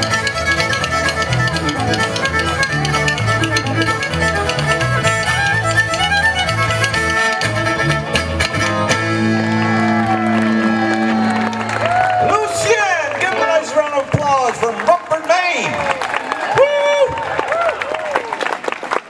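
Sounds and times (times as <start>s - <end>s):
fiddle tune: 0.0s - 15.5s.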